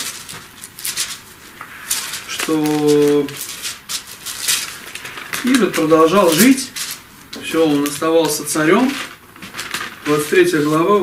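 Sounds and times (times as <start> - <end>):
faint rustling: 0.0 - 11.0.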